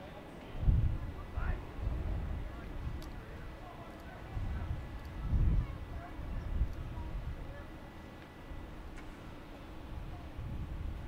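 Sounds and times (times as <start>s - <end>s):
faint voices: 0.0s - 11.0s
wind rumbling on microphone: 0.5s - 7.8s, 8.5s - 11.0s.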